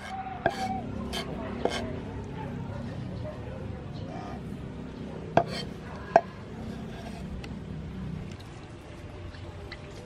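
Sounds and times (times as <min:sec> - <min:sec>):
blade scraping garlic: 0:00.0 - 0:02.0, 0:05.4 - 0:07.5.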